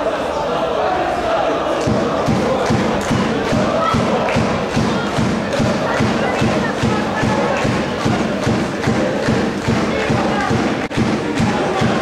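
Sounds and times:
stadium crowd noise: 0.0 - 12.0
bass drum beating: 1.9 - 12.0.

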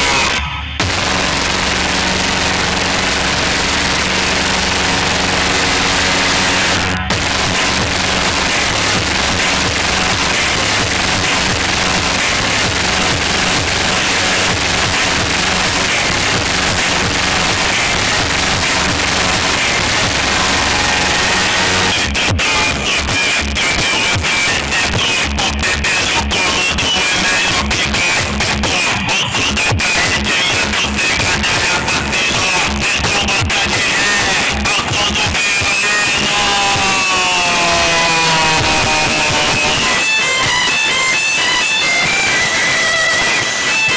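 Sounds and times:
loud distorted music with heavy bass: 0.0 - 43.9.

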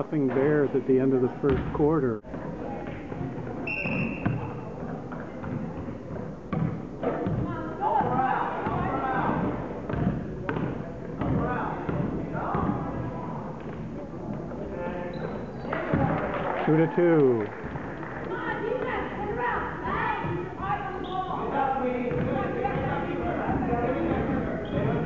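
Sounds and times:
voices in a hall: 0.0 - 25.0
basketball bouncing on wood floor: 1.5 - 1.7, 4.2 - 13.0, 22.1 - 25.0.

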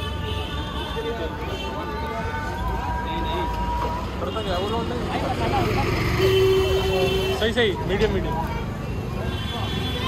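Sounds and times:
people's voices: 0.0 - 10.0
traffic rumble: 0.0 - 10.0.

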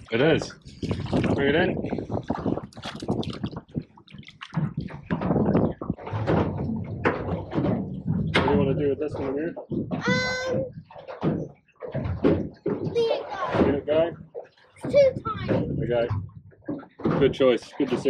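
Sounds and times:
indistinct voices talking: 8.4 - 10.8, 12.8 - 16.1.

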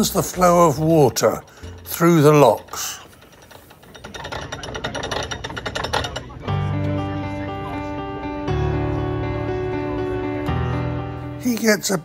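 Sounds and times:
background music sustained notes: 0.0 - 12.0
ratchet clicking: 1.6 - 6.5.

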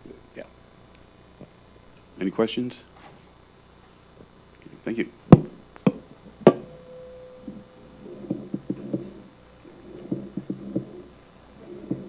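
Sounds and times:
microphone handling thumps: 5.3 - 12.0
muffled knocks: 5.3 - 12.0.

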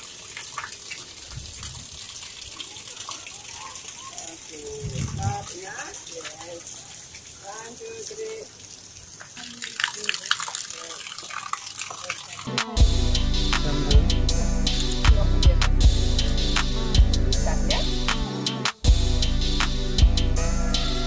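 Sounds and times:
running water: 0.0 - 12.8
people talking quietly: 2.1 - 12.5.

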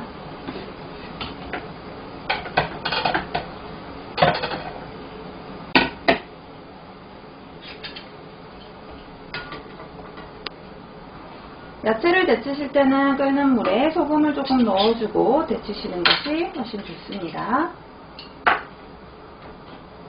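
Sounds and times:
kitchen utensils clinking: 14.4 - 15.0.

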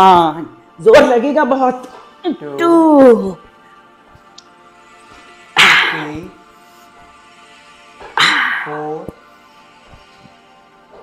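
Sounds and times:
faint background music: 0.0 - 11.0
dog barking: 5.6 - 6.2.

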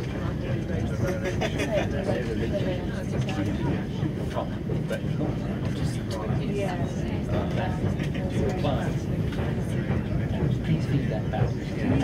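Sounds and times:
people talking faintly: 0.0 - 12.0.

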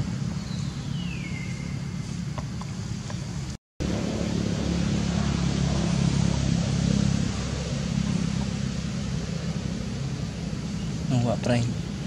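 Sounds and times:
engine humming: 0.0 - 12.0
noisy hiss: 4.3 - 12.0.

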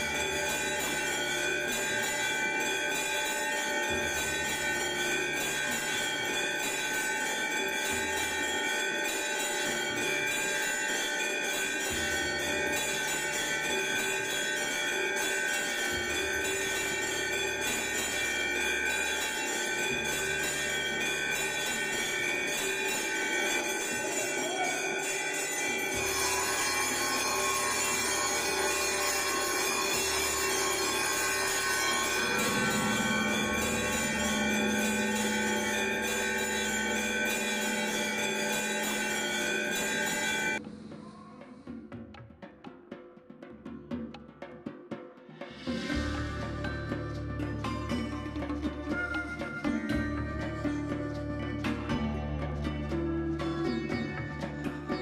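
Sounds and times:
bells ringing: 0.0 - 40.7, 45.7 - 55.0.

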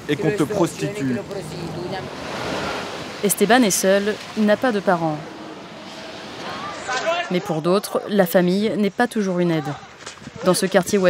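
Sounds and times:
tyres hissing on wet road: 0.0 - 7.2.

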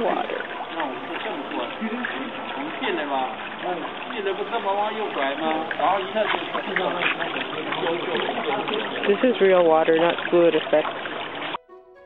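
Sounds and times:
people talking: 0.0 - 10.9
fountain water trickling: 0.0 - 11.6.

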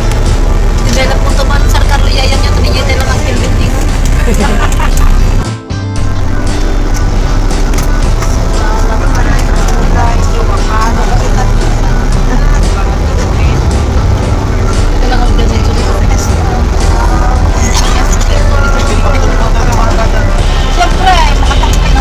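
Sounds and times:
voices: 0.0 - 5.4, 7.9 - 22.0
bus engine low rumble: 0.0 - 22.0
music: 0.0 - 22.0.

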